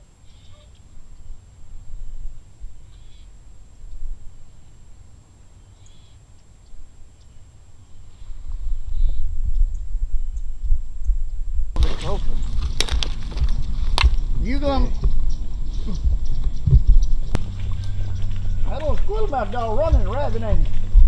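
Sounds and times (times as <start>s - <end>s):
faint distant high calls: 0.0s - 10.5s, 14.2s - 20.6s
wind rumbling on microphone: 0.0s - 21.0s
loud voices: 17.4s - 20.9s.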